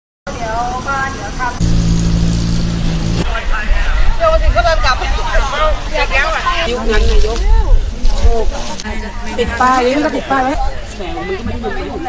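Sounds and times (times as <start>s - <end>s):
voices talking: 0.3s - 12.0s
low engine hum: 0.5s - 3.6s.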